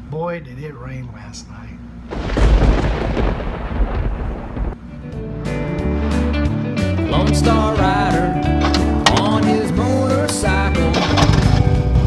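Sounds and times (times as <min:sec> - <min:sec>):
thunder crash rumbling: 0:02.1 - 0:04.8
music with sustained notes: 0:04.8 - 0:12.0.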